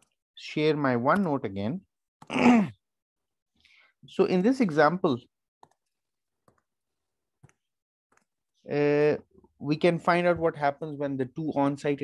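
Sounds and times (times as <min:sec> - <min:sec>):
computer mouse clicks: 0:05.6 - 0:06.7, 0:07.4 - 0:08.3.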